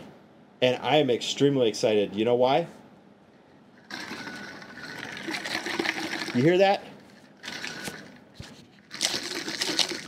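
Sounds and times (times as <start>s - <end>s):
ice rattling in shaken bottle: 8.9s - 10.0s.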